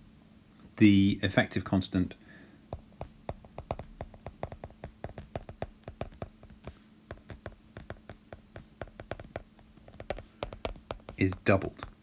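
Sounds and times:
stylus tapping on glass screen: 0:02.7 - 0:12.0.

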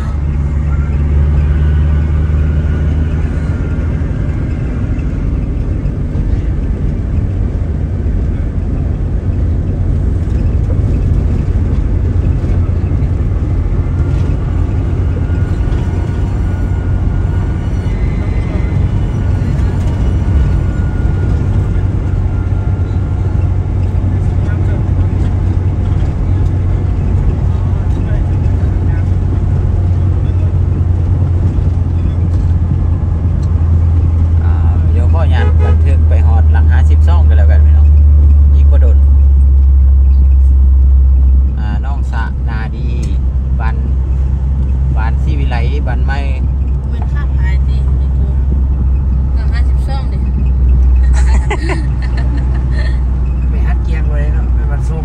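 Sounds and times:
car engine and road noise: 0:00.0 - 0:55.0.

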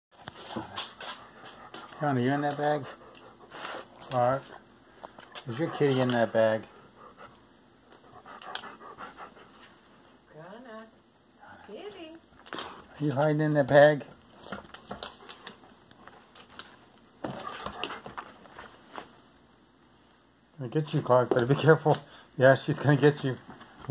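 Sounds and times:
dog panting: 0:00.3 - 0:10.0, 0:14.3 - 0:18.3.

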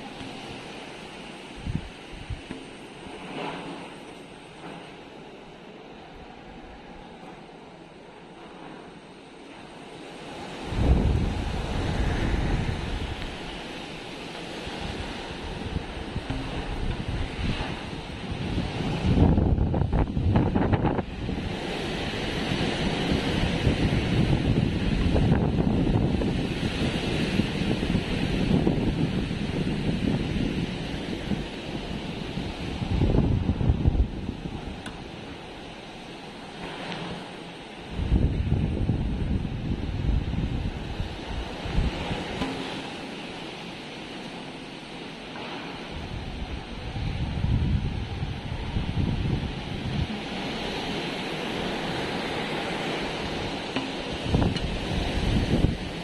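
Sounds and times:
strong wind gusting: 0:00.0 - 0:56.0.

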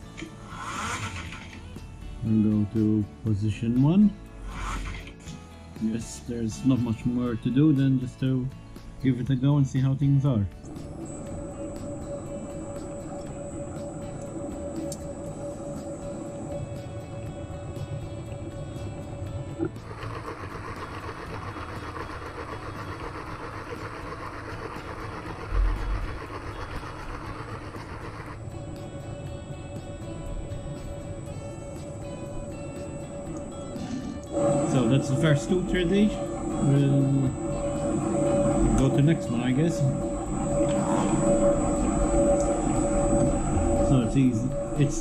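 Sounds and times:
milling machine whine: 0:00.0 - 0:45.0.

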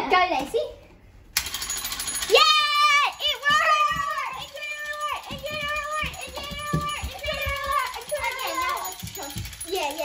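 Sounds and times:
child shouting: 0:02.3 - 0:10.0.

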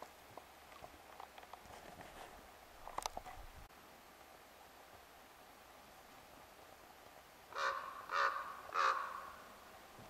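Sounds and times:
crow cawing: 0:07.5 - 0:09.4.

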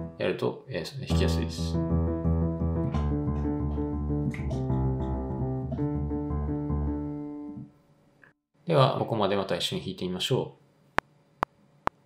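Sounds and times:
low piano notes: 0:01.0 - 0:07.6.

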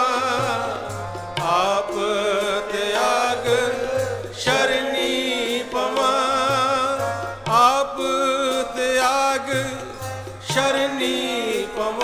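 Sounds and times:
harmonium reed tones: 0:00.0 - 0:12.0
people singing: 0:00.0 - 0:12.0
tabla: 0:00.0 - 0:12.0.

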